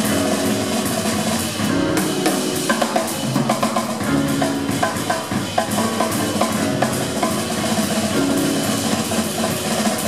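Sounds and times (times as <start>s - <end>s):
cymbals and drum hits: 0.0s - 10.0s
live jazz band playing: 0.0s - 10.0s.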